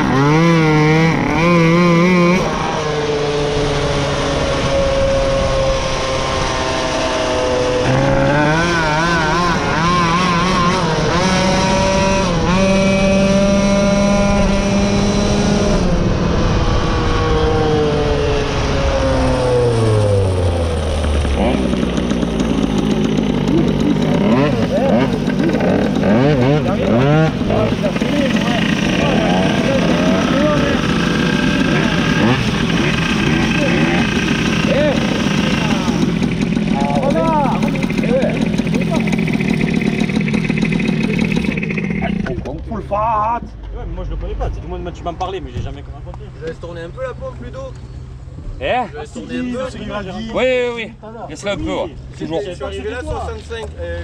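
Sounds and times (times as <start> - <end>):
moped engine slowing down: 18.6 - 43.1
voices: 21.3 - 54.0.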